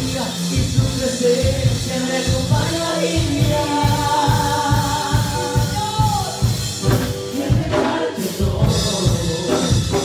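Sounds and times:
group singing praise song: 0.0s - 10.0s
music with steady beat: 0.0s - 10.0s.

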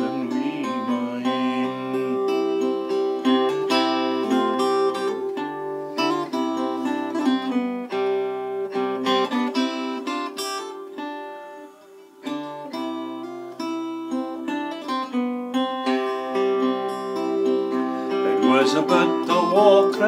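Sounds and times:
acoustic guitar plucking: 0.0s - 20.0s.

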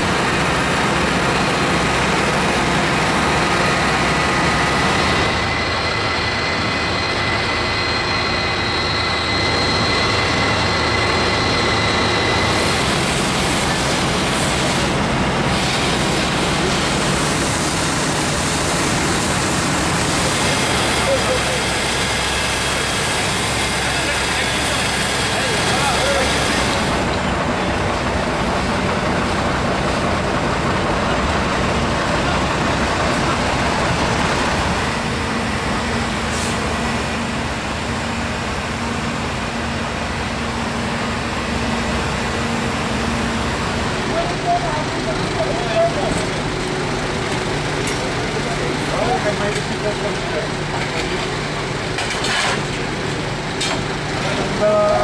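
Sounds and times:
fire engines running: 0.0s - 55.0s
indistinct voices: 43.8s - 52.7s.

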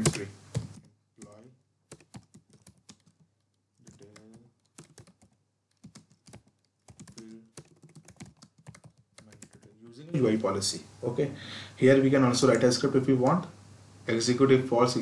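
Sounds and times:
keyboard typing: 0.0s - 9.8s.

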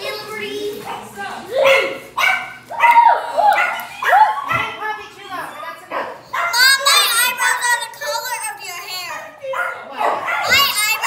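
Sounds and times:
dog barking: 0.9s - 4.8s, 5.9s - 6.7s, 9.4s - 11.0s.

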